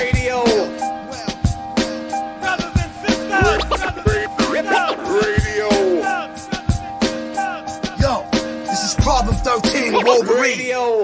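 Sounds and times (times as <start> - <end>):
man rapping over hip hop music: 0.0 - 11.0.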